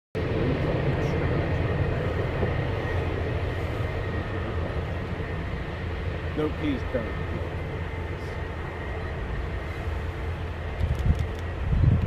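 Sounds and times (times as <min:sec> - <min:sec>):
jet engines rumbling with whine: 0:00.2 - 0:12.0.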